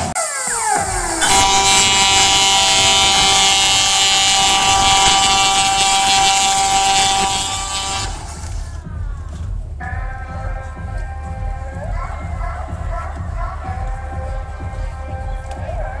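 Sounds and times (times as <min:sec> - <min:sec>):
falling whistle-like glides: 0:00.2 - 0:08.7
loud horn-like blare: 0:01.2 - 0:08.8.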